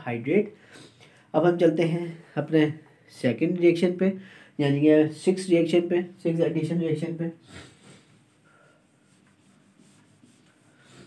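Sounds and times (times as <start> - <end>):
marker drawing on whiteboard: 8.0 - 11.0.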